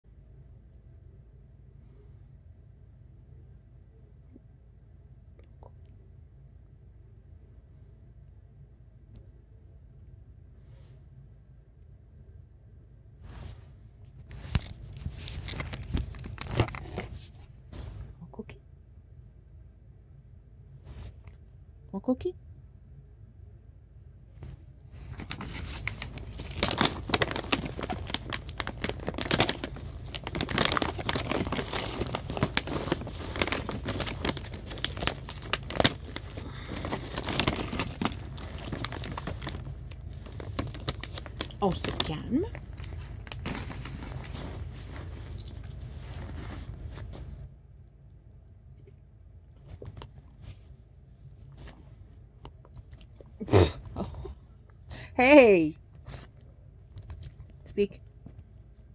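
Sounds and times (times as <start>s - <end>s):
plastic bag crinkling: 14.3s - 17.4s, 25.0s - 47.2s.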